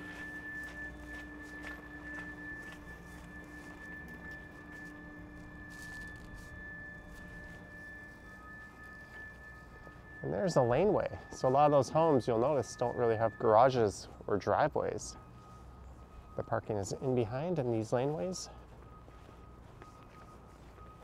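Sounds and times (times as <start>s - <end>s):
footsteps on paved path: 0.0s - 21.0s
steady high-pitched tone: 0.0s - 21.0s.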